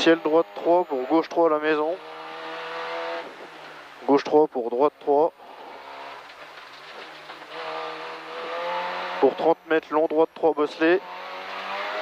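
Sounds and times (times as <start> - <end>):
road and tyre hiss: 0.0 - 12.0
car engine from inside cabin: 7.4 - 9.3, 11.0 - 12.0.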